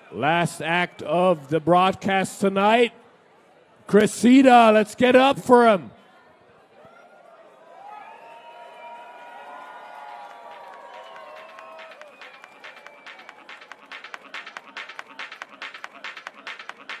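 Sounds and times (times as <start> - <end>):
fast driving dance beat: 10.9 - 17.0.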